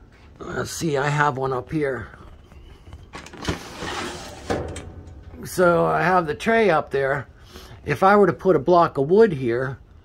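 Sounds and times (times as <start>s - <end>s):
part sliding and scraping: 3.3s - 5.2s.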